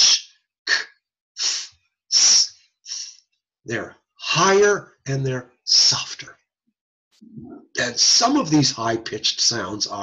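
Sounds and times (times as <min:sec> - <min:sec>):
man making hissing sounds: 0:00.0 - 0:00.8, 0:01.4 - 0:03.2.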